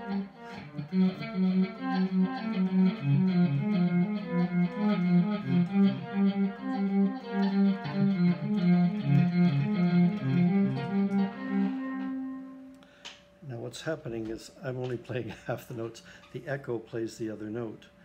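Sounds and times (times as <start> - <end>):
electric guitar pulsing with delay: 0.0 - 12.7.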